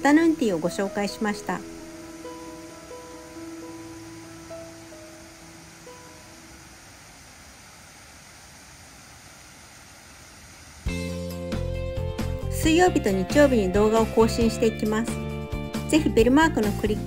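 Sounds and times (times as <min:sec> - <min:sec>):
soft background music: 0:00.0 - 0:07.0, 0:10.9 - 0:17.0
steady rushing noise: 0:00.0 - 0:11.3.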